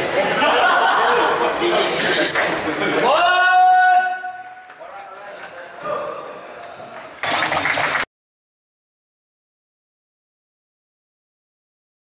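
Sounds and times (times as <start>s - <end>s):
voices in echoing corridor: 0.0s - 7.8s
man shouting: 3.0s - 4.5s.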